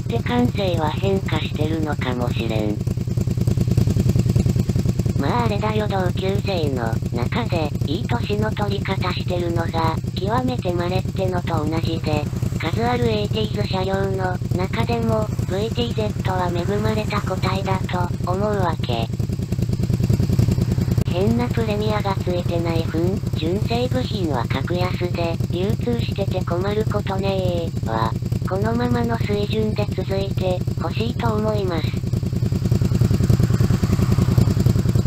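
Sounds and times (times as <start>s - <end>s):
motorcycle engine idling: 0.0s - 35.0s.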